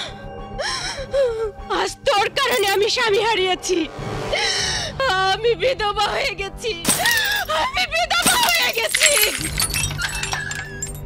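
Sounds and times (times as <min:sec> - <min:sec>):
woman wailing and sobbing: 0:06.0 - 0:11.0.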